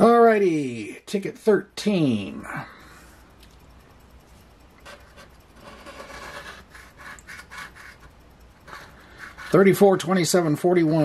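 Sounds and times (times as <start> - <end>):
coin scraping a scratch card: 4.8 - 9.8.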